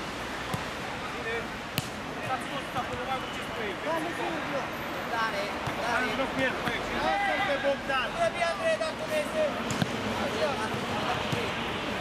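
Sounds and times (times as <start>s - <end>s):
players shouting: 5.8s - 12.0s.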